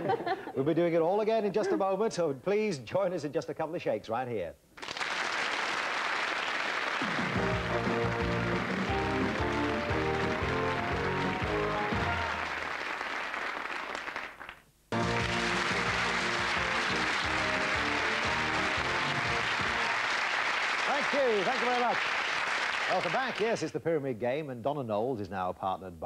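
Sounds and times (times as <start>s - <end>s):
studio audience applause: 4.8s - 23.7s
game show theme music: 7.1s - 12.6s, 14.9s - 20.2s.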